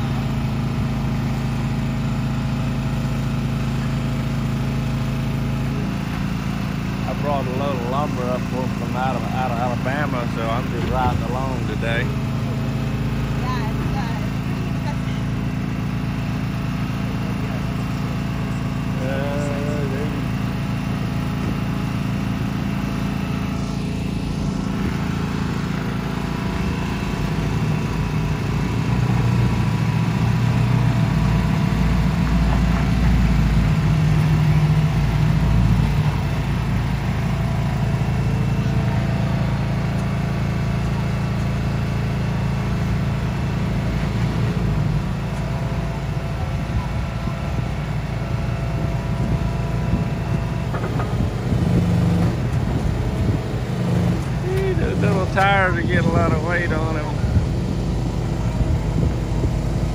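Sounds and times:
pickup truck engine running: 0.0s - 59.9s.

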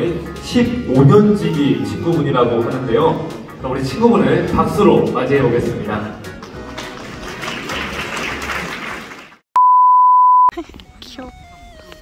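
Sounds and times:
soft background music: 0.0s - 8.1s
crowd noise in a hall: 0.0s - 9.4s
music in a hall: 0.0s - 9.4s
loud steady bleep tone: 9.6s - 10.5s.

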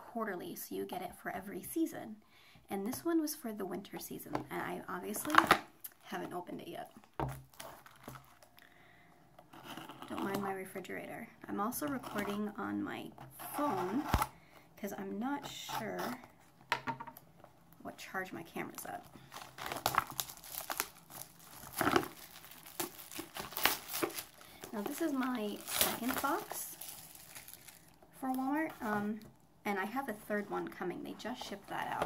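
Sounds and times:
packaging crinkling and rustling: 7.0s - 8.6s, 18.6s - 29.3s
box scraping: 13.3s - 14.3s.

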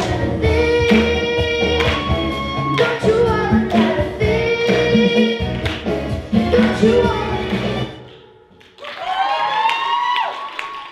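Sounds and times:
audience applause: 8.6s - 10.9s
audience woo cheer: 8.8s - 10.9s.

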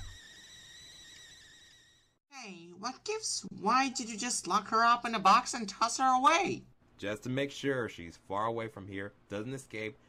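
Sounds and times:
high-pitched whistle tone: 0.0s - 2.0s.

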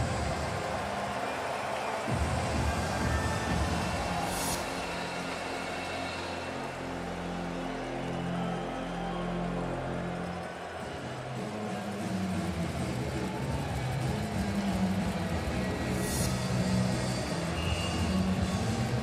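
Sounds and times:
music with long low notes: 0.0s - 19.0s
steady background din: 0.0s - 19.0s.

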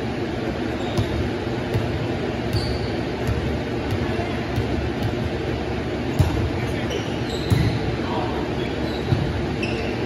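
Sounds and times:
sports hall background noise: 0.0s - 10.0s.

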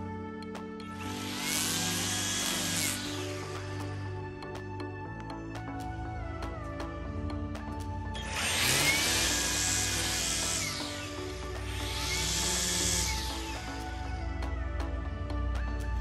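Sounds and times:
background music: 0.0s - 16.0s
string trimmer cutting grass: 0.9s - 4.2s, 8.2s - 14.2s.

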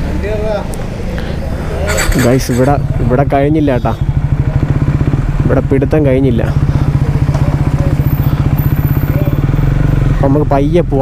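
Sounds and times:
motorcycle engine idling: 1.8s - 10.8s.

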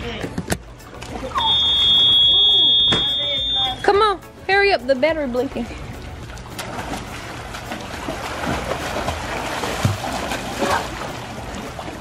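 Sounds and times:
high-pitched electronic beep: 1.4s - 3.9s.

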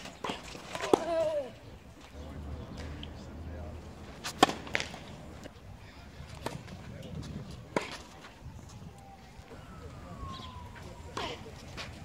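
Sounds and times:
tennis ball struck by racket: 4.1s - 5.2s.

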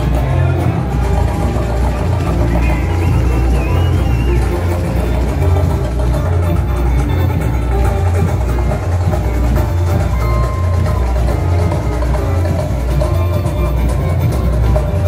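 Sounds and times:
heavy pulsing bass beat: 0.0s - 15.0s
samba parade music: 0.0s - 15.0s
samba percussion: 0.0s - 15.0s.

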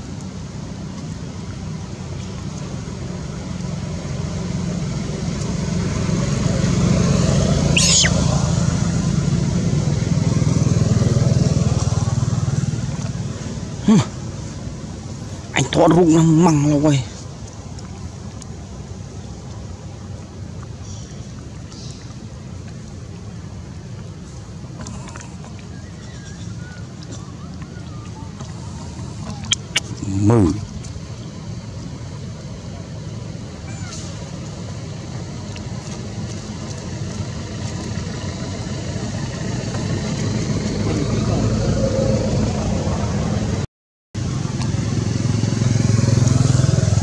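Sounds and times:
motor engine drone: 0.0s - 15.8s, 23.1s - 43.6s, 44.2s - 47.0s
short high squeal: 7.7s - 8.4s
high-pitched animal calls: 7.7s - 8.5s, 25.0s - 30.6s, 33.6s - 34.2s
hands splashing in muddy water: 24.7s - 30.8s.

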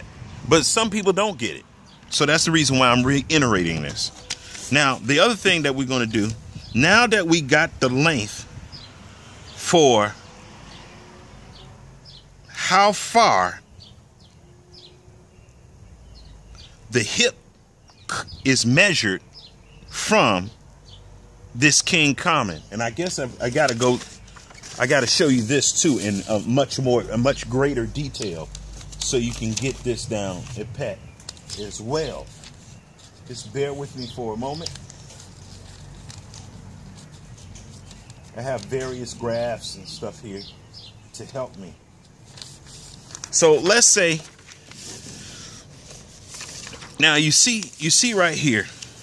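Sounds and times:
low outdoor hiss: 0.0s - 49.0s
papers rustling: 2.1s - 6.4s, 22.9s - 39.6s, 41.2s - 49.0s.

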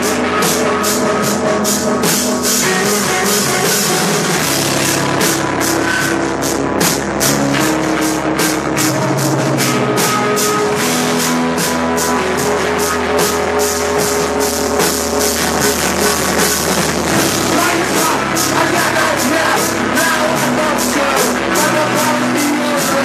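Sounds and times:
distorted guitars: 0.0s - 23.0s
fast drumming: 0.0s - 23.0s.

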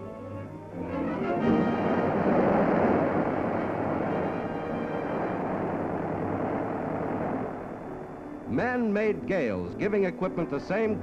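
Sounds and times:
orchestral music with brass: 0.0s - 5.8s
aircraft propeller roaring: 0.8s - 9.2s.

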